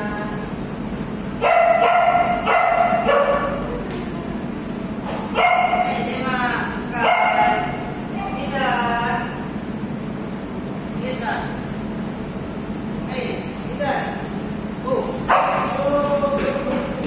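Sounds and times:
dogs barking and yelping: 1.4s - 3.7s, 7.0s - 7.8s.

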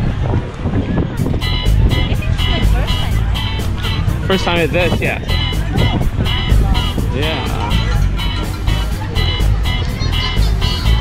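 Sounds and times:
loud music with heavy bass: 1.2s - 11.0s.

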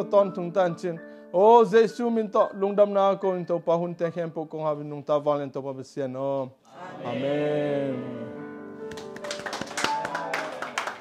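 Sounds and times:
people clapping: 8.9s - 11.0s.

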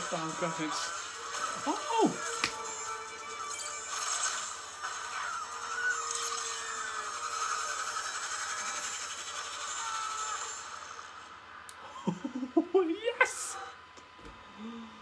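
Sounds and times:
film trailer music: 0.0s - 5.7s.

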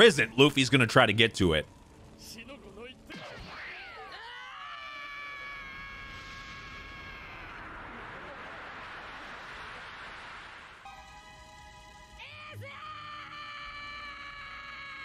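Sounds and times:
steady rushing noise: 7.7s - 10.9s.

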